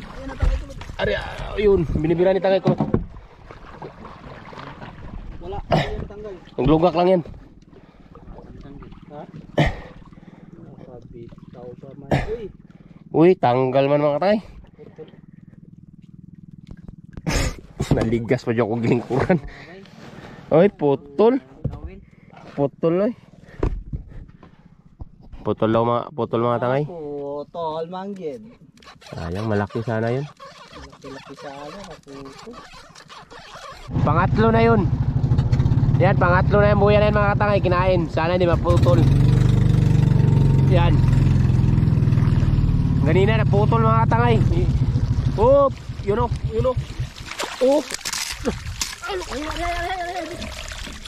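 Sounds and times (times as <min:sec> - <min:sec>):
boat engine idling: 0:00.0 - 0:25.2, 0:29.5 - 0:47.9.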